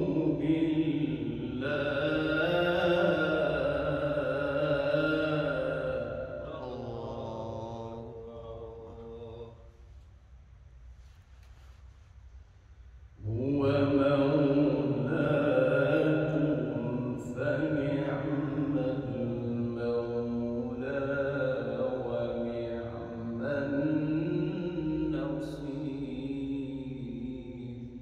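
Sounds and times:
man reciting melodically: 0.0 - 9.8, 13.2 - 28.0.

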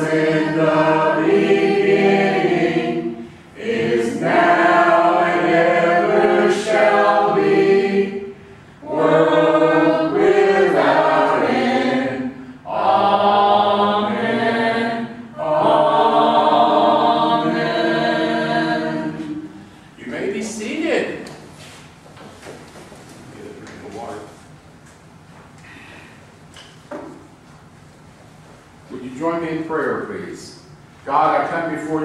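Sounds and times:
voices singing together: 0.0 - 20.3.

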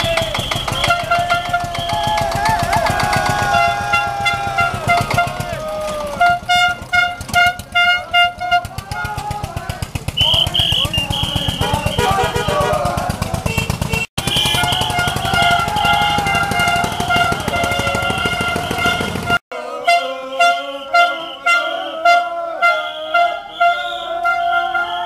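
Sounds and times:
toy trumpets tooting: 0.0 - 2.3, 3.5 - 5.6, 6.2 - 9.2, 10.2 - 25.0
tractor engine chugging: 0.0 - 19.4
voices shouting: 0.0 - 25.0.

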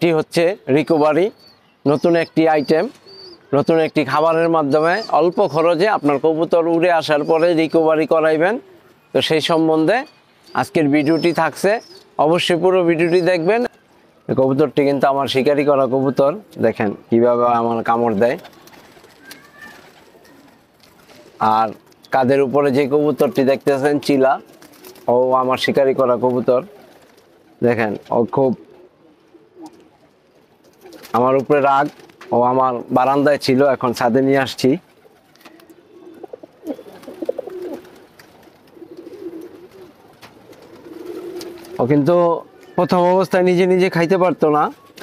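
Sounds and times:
speech: 0.0 - 18.5, 21.4 - 24.5, 25.1 - 26.7, 27.6 - 28.6, 31.1 - 34.8, 41.8 - 44.9
pigeons cooing: 0.8 - 13.8, 14.9 - 45.0.

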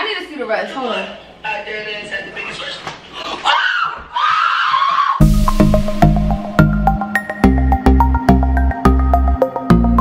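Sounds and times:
women screaming: 3.4 - 5.2.

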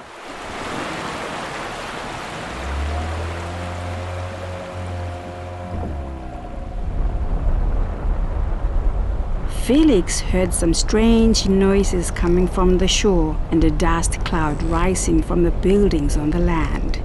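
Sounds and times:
sea surf washing: 0.0 - 14.8
uneven low rumble: 2.5 - 17.0.

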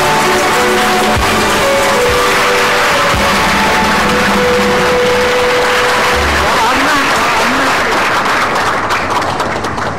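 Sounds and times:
audience applauding: 0.0 - 9.9.

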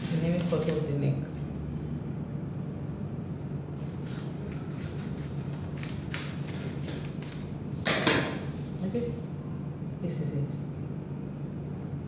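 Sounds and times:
steady low hum: 0.0 - 12.0
paper rustling: 3.8 - 7.5
scissors snipping paper: 3.9 - 7.5.

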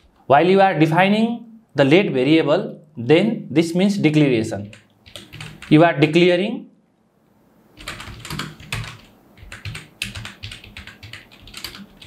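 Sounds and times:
keyboard keys clicking: 4.6 - 5.7, 7.8 - 12.0.

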